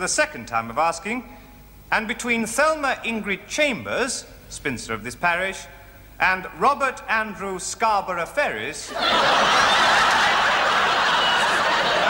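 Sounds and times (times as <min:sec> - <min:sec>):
crowd laughing: 0:08.9 - 0:12.0.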